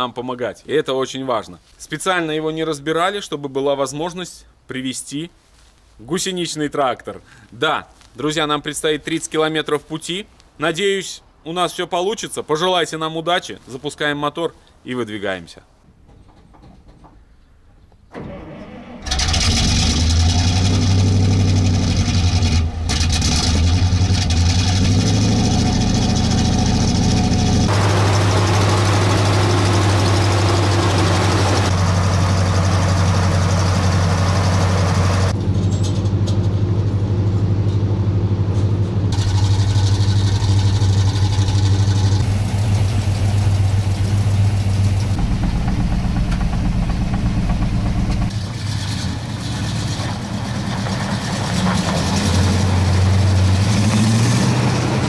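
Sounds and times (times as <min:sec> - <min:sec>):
truck engine starting and idling: 0:18.1 - 0:55.0.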